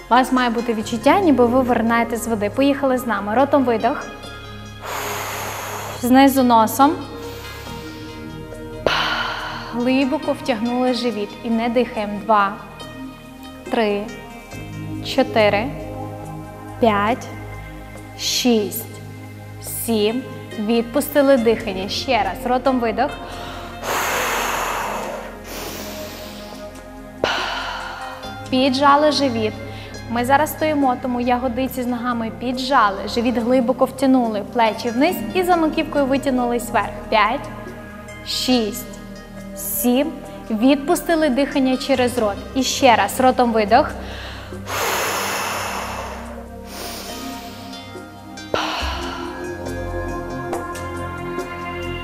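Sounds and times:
background music: 0:00.0 - 0:52.0
forceful exhale through mouth: 0:04.8 - 0:06.1, 0:07.2 - 0:09.8, 0:23.4 - 0:28.4, 0:44.1 - 0:49.7
quiet breath: 0:04.8 - 0:06.1, 0:07.2 - 0:09.9, 0:23.2 - 0:28.5, 0:29.6 - 0:30.1, 0:44.0 - 0:49.7.

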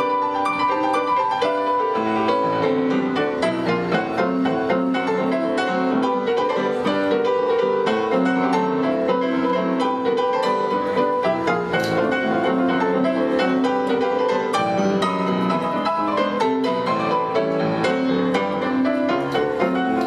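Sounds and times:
ragtime piano: 0:00.0 - 0:20.0.

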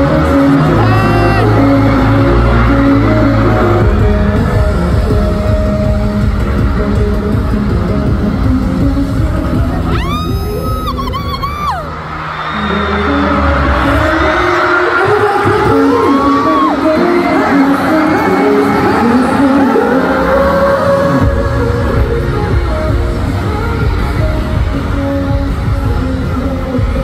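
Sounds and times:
arena crowd: 0:00.0 - 0:27.0
bass-heavy concert music: 0:00.0 - 0:27.0.

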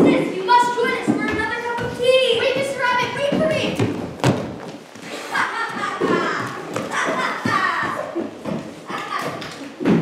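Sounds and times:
young person's voice: 0:00.0 - 0:03.9.

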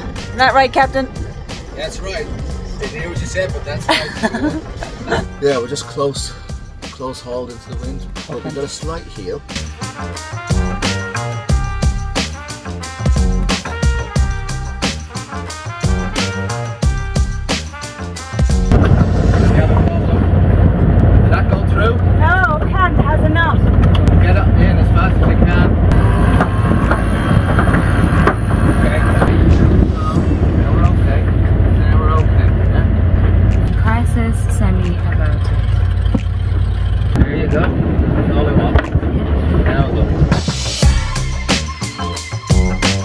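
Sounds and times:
wind buffeting microphone: 0:00.0 - 0:06.9, 0:18.7 - 0:40.9.

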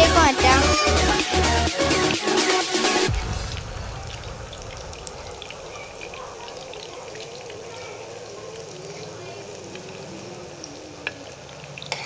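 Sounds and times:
chicken sizzling in hot oil: 0:03.0 - 0:12.0.

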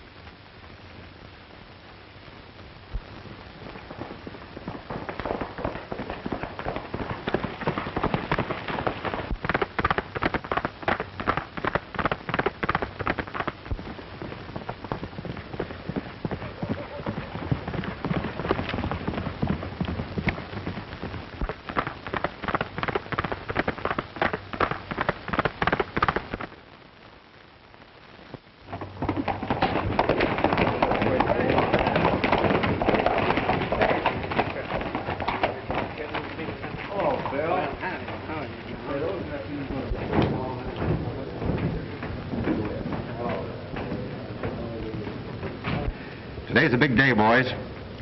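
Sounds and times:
old film soundtrack hiss: 0:00.0 - 0:48.0
horse hoofbeats galloping: 0:02.9 - 0:26.6, 0:28.6 - 0:48.0.

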